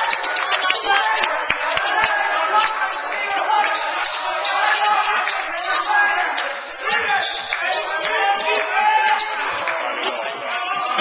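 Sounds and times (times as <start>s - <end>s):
overlapping voices: 0.0s - 11.0s.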